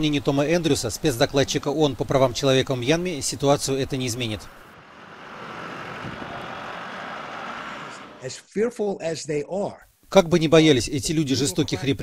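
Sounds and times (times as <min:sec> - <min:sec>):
trucks driving past: 0:02.8 - 0:08.2.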